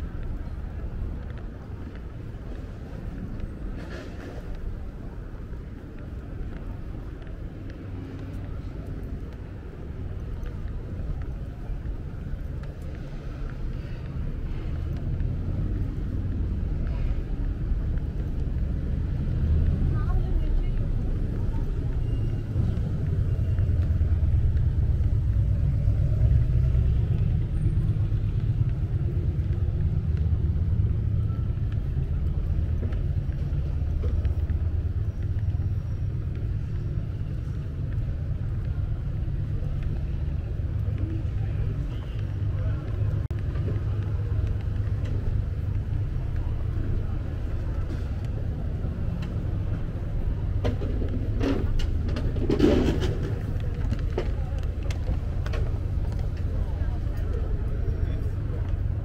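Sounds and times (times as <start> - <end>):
pedestrian chatter: 0.0 - 59.0
traffic rumble: 0.0 - 59.0.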